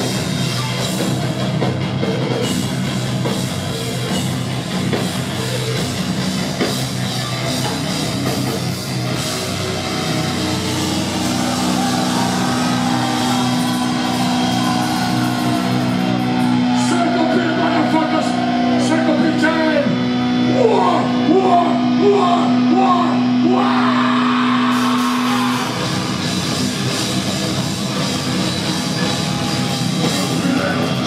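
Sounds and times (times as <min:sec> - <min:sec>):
distorted electric guitars chord: 0:00.0 - 0:31.0
heavy metal band playing: 0:00.0 - 0:31.0.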